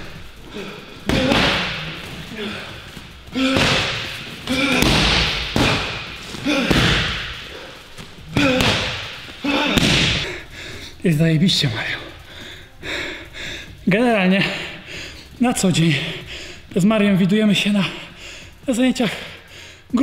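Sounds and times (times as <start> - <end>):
punches and kicks on pads: 1.0 - 2.0, 3.4 - 7.6, 8.3 - 10.2.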